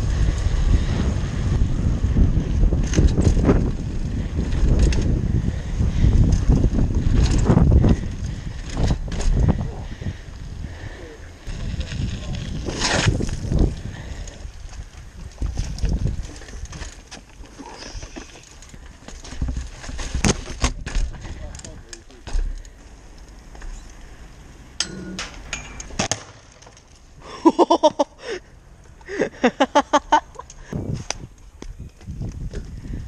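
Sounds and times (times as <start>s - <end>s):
wind on microphone: 0.0s - 16.8s, 30.6s - 33.0s
bike tyre rumble: 0.0s - 33.0s
bike clicks and knocks: 2.7s - 3.8s, 4.4s - 5.2s, 6.0s - 9.5s, 12.1s - 24.2s, 24.8s - 28.0s
person laughing: 27.2s - 28.4s, 29.0s - 30.5s.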